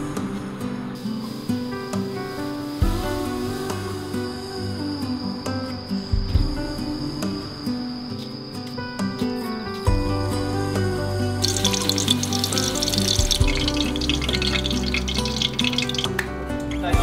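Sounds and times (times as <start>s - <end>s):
background music: 0.0s - 17.0s
cutlets sizzling in hot oil: 11.4s - 16.2s.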